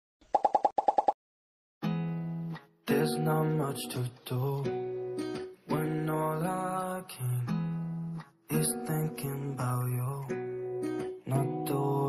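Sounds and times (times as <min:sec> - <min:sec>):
music: 0:01.8 - 0:12.0.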